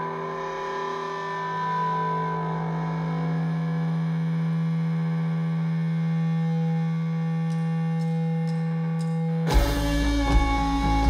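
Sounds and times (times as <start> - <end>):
distorted electric guitar drone: 0.0 - 11.0.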